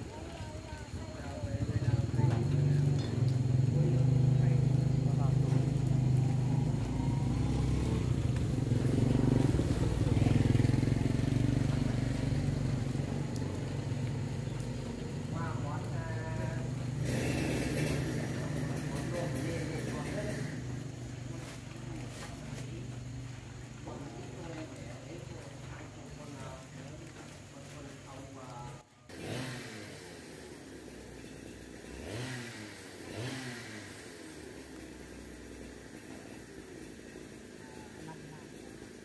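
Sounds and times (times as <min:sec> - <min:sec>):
motorcycle engine droning: 0:00.0 - 0:39.0.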